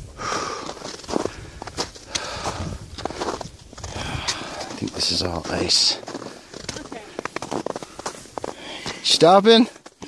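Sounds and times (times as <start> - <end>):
footsteps crunching on snow and gravel: 0.3 - 10.0.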